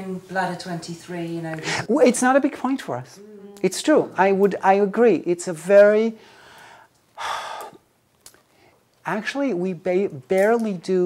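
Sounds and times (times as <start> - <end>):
man breathing: 6.2 - 7.8, 8.4 - 8.9.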